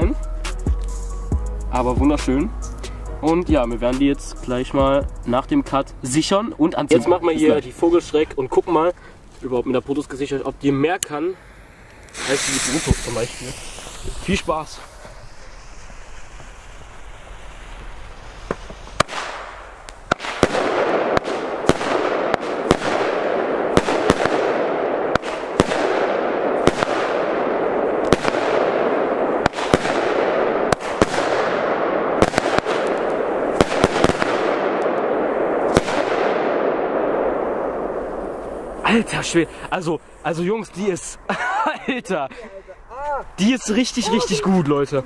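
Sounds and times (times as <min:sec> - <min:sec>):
continuous hiss: 0:00.0 - 0:45.0
firework battery bangs: 0:11.1 - 0:39.7.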